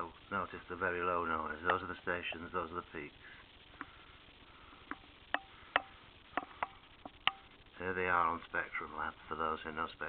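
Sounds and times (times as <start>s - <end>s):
low steady hiss: 0.0s - 10.0s.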